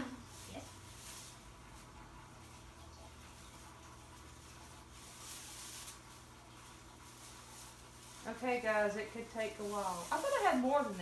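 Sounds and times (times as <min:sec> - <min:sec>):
tinsel garland rustling: 0:00.0 - 0:11.0.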